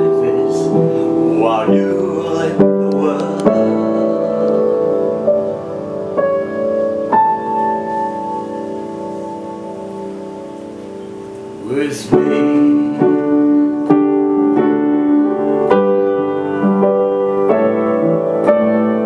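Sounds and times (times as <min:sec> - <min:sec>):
piano chords: 0:00.0 - 0:19.0.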